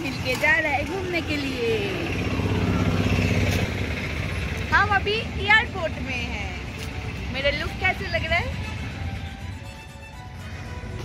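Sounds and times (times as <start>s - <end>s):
car engine running low revs: 1.8s - 5.2s.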